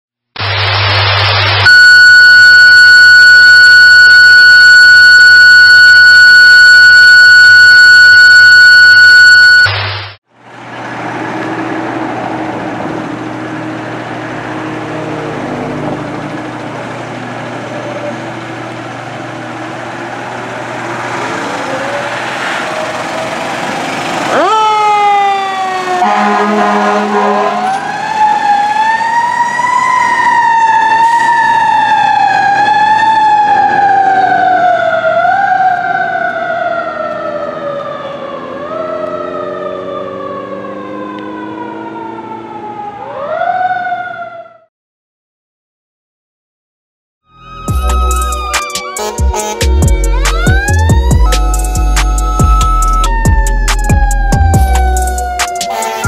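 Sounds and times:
fire engine siren wailing: 0.4 - 10.2, 10.8 - 44.7, 47.3 - 56.0
loud steady electronic tone: 0.4 - 10.2, 47.4 - 56.0
air horn blast: 25.8 - 27.9, 47.6 - 50.8, 55.6 - 56.0
idling rumble and hum: 49.7 - 55.4.

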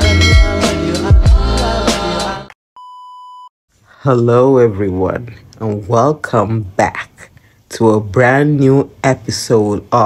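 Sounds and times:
intro music: 0.0 - 2.6.

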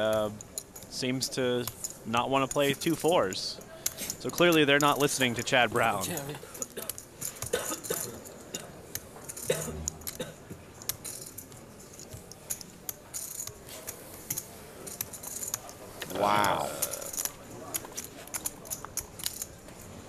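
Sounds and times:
poker chips clicking: 8.9 - 15.8, 16.5 - 19.6.

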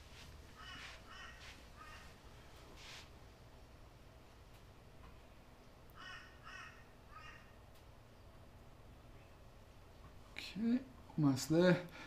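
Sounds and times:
faint bird calls: 0.6 - 2.2, 5.9 - 7.6.

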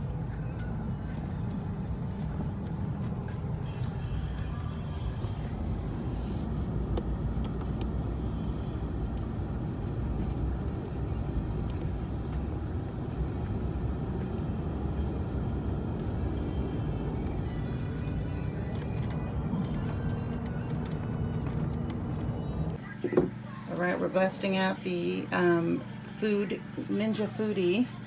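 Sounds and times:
music playing: 0.0 - 28.0
truck engine rumble: 0.0 - 28.0.

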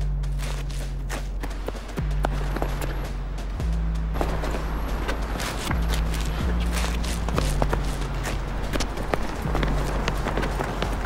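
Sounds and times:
low steady hum: 0.0 - 11.0
running footsteps: 0.0 - 11.0.

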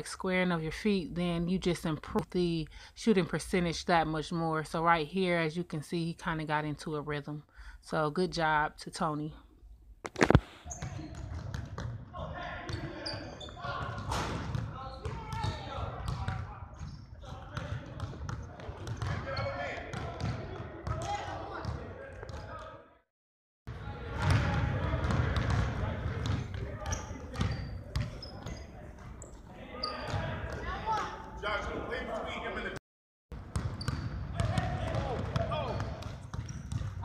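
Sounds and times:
basketballs bouncing on gym floor: 10.7 - 22.6, 24.1 - 29.2, 33.4 - 37.0.

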